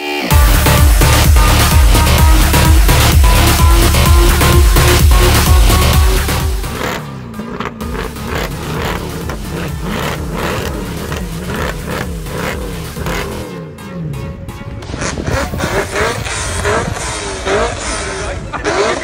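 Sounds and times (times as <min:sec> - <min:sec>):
music: 0:00.0 - 0:18.4
car engines revving: 0:00.0 - 0:19.0.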